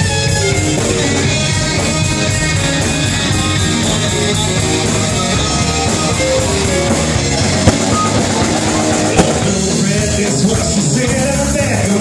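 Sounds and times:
rock band playing: 0.0s - 12.0s
sharp drum hit: 7.6s - 10.1s.

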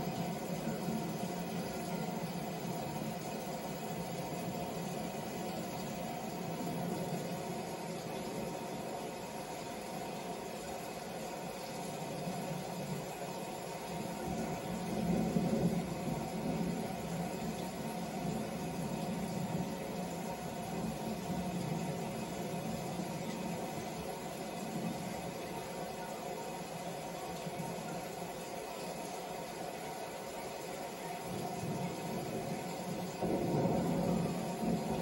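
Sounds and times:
hum and hiss: 0.0s - 35.0s.

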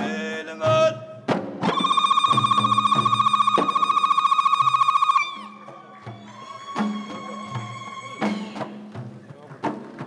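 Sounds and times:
high trilled ululation: 1.7s - 8.5s.

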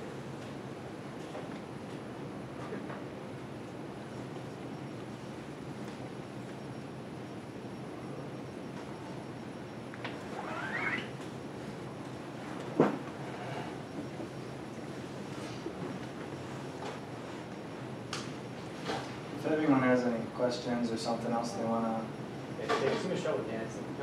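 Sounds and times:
room noise: 0.0s - 24.0s.

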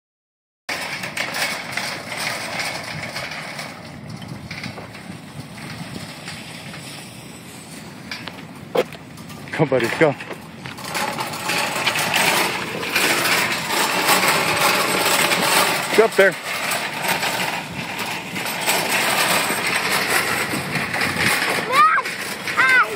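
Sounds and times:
shopping cart rolling on asphalt: 0.7s - 22.9s.

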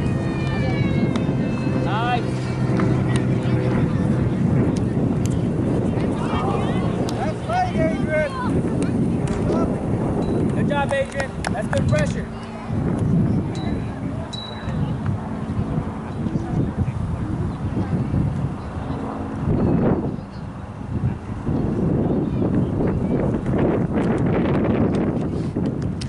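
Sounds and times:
people shouting: 0.0s - 2.6s
wind rumble on microphone: 0.0s - 26.0s.

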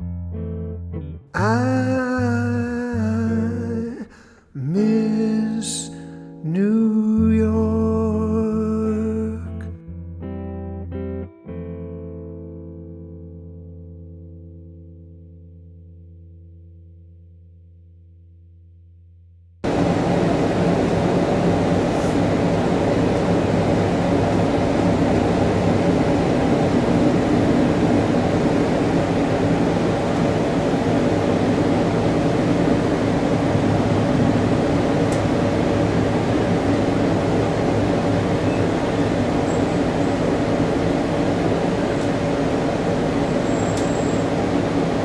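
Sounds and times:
train carriage rumble and drone: 19.6s - 45.0s.

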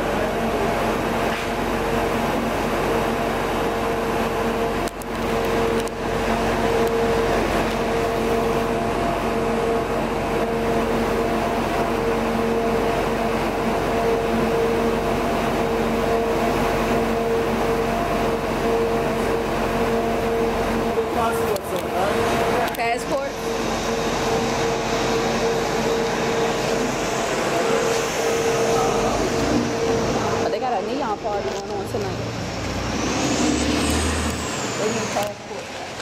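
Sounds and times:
machine humming: 0.0s - 36.0s.

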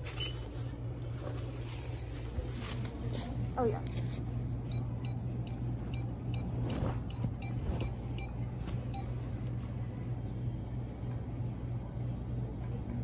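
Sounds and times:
store interior hum: 0.0s - 13.0s.

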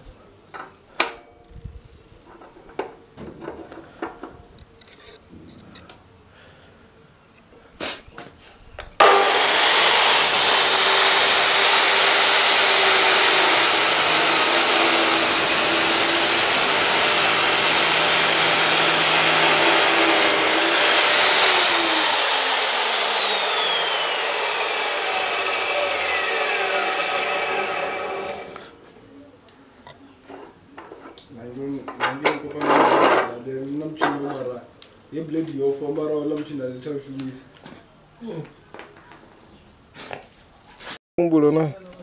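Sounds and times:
abrasive wheel grinding metal: 9.0s - 28.7s
cutoff saw whine: 9.0s - 28.8s.

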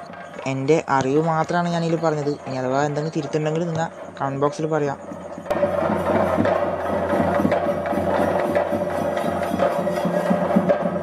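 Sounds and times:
fast drumming: 0.0s - 11.0s.

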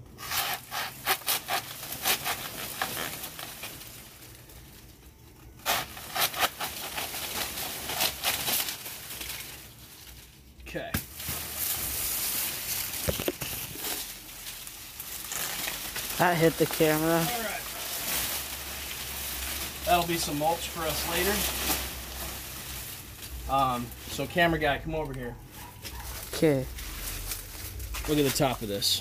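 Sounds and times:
hand saw cutting plant stem: 0.2s - 3.2s, 5.6s - 7.1s
leaves rustling: 0.2s - 29.0s.

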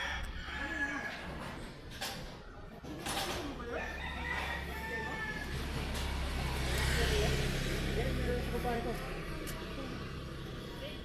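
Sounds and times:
rooster crowing: 0.0s - 1.5s, 3.6s - 6.0s
motorcycle engine running: 5.6s - 11.0s.

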